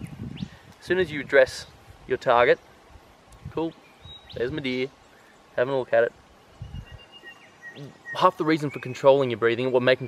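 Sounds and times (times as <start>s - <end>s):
bird whistling: 3.9s - 4.5s, 6.6s - 9.1s.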